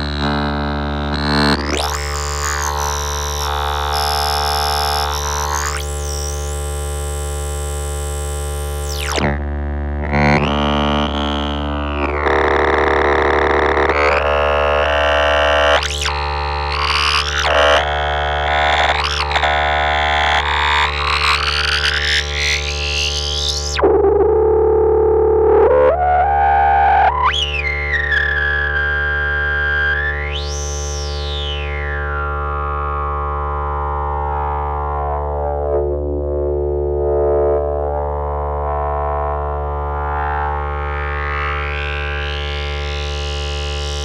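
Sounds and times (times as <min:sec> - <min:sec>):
synthesizer oscillator through resonant filter: 0:00.0 - 0:44.0.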